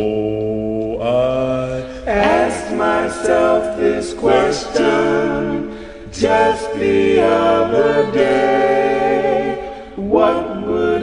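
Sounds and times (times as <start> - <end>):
male vocal group singing harmony: 0.0 - 11.0.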